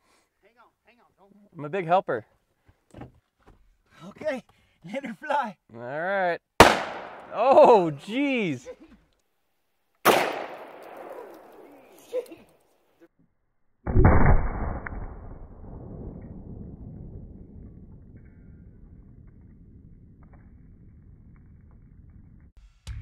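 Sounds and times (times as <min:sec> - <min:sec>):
cartridge exploding bangs: 0:06.6 - 0:07.3, 0:10.0 - 0:12.0.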